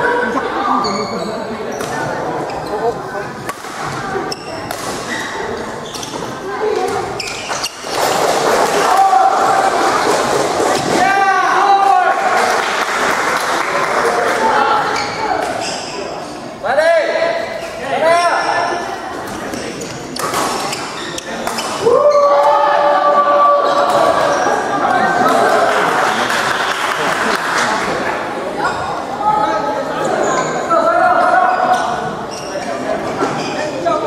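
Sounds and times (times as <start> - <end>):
crowd chatter: 0.0 - 34.0
shoes squeaking on floor: 0.7 - 3.0, 4.2 - 8.4, 14.9 - 16.4, 17.6 - 21.8, 30.0 - 30.7, 31.5 - 33.8.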